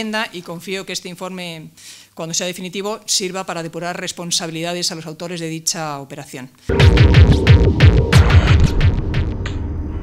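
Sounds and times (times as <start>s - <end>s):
loud electronic music: 6.7s - 9.9s
crisp percussion hits: 6.7s - 10.0s
heavy bass thumps: 6.7s - 10.0s.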